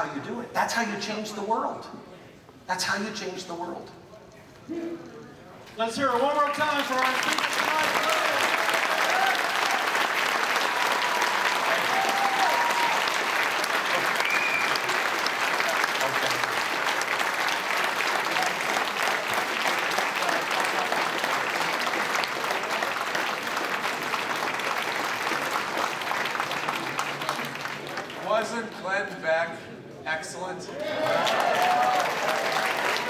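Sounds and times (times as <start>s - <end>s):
audience applauding: 6.0s - 28.3s, 30.8s - 33.0s.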